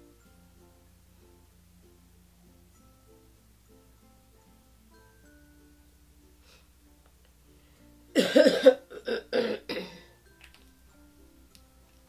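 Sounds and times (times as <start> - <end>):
woman coughing: 8.2 - 10.0.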